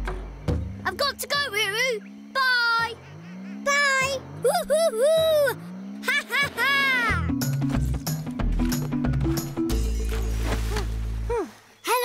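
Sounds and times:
cartoon lion whoops and cries: 4.4 - 7.3
light children's music: 6.7 - 11.1.

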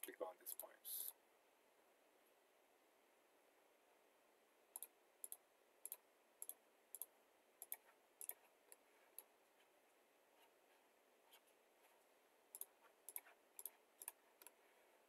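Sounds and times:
computer mouse button clicking: 4.8 - 8.4, 12.5 - 14.6.

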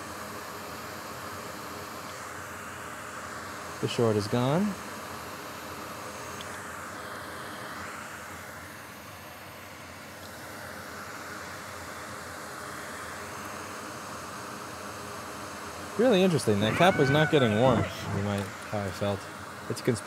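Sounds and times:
fan air hiss: 0.0 - 20.0
faint low hum: 16.3 - 19.2.

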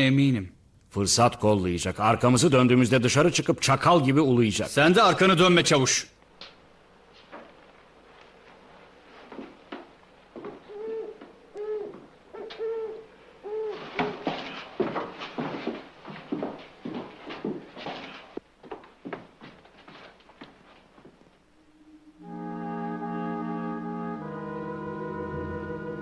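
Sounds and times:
hurried steps on wooden boards: 9.2 - 12.1, 13.8 - 21.3
owl-like hoots: 10.6 - 14.7.

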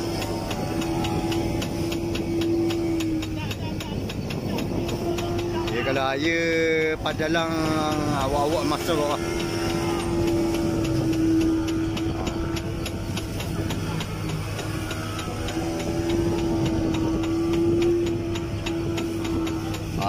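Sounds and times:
boat engine droning: 0.0 - 20.0
light ticking: 0.0 - 20.0
water rushing along hull: 0.0 - 20.0.

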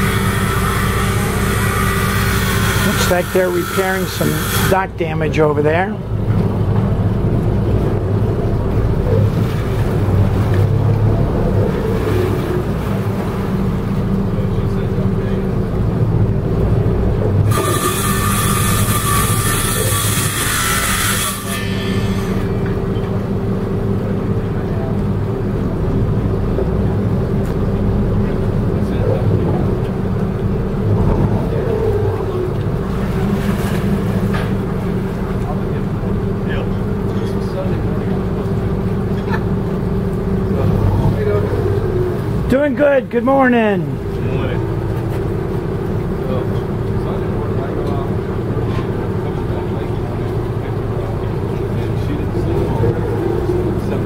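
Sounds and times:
boat diesel engines humming: 0.0 - 54.0.

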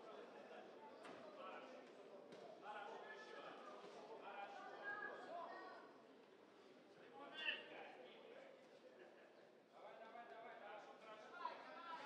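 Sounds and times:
murmur of voices in a hall: 0.0 - 12.0.

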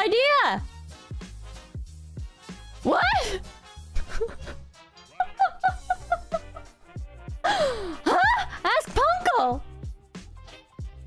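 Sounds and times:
background music with low beat: 0.6 - 11.0
woman's breathy cry: 7.4 - 8.5.

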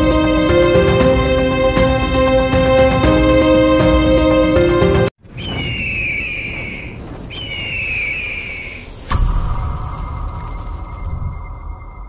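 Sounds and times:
bird of prey screech: 5.4 - 9.0
low rumble: 8.8 - 12.0.

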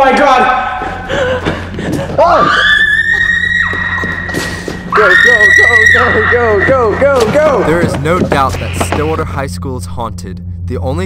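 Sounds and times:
person screaming: 2.2 - 4.0.

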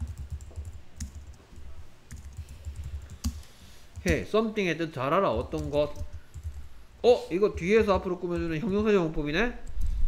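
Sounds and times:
typing on computer keyboard: 0.0 - 1.4, 2.1 - 4.3, 5.4 - 6.6.

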